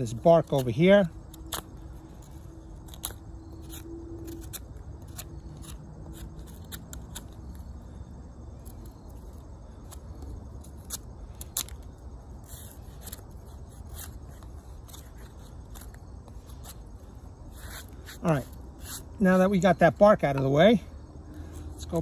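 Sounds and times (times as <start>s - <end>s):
knife scraping bark: 0.0s - 7.8s, 8.5s - 22.0s.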